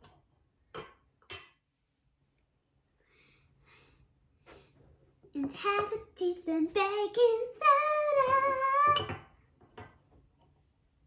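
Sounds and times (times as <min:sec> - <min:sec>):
child singing: 0:05.4 - 0:09.2.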